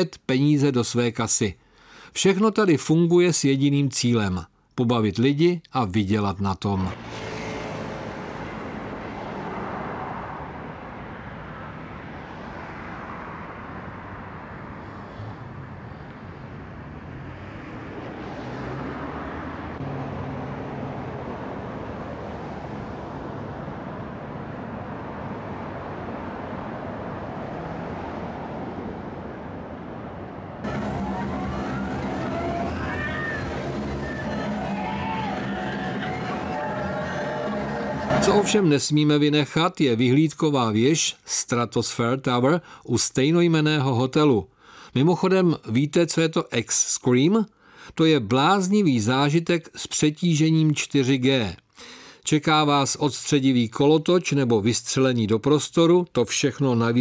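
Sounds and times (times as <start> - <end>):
city traffic passing cars: 6.8 - 39.7
rising whine over low tones: 28.6 - 38.8.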